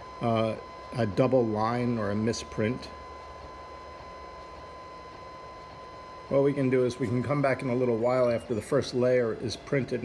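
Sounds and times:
printer whirring: 0:00.0 - 0:10.0.

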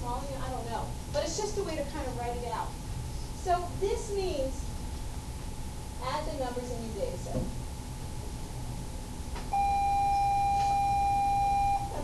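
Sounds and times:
steady electronic beep: 0:09.5 - 0:12.0.

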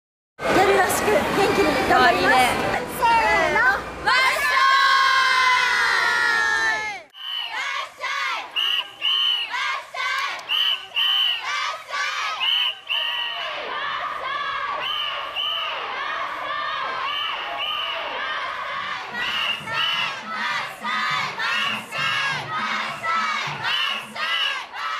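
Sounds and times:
women chanting in rhythm: 0:18.1 - 0:24.9.

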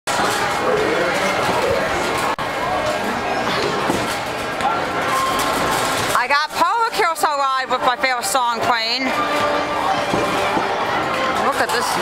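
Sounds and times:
crowd chatter: 0:00.1 - 0:12.0
faint carousel music: 0:04.9 - 0:12.0.

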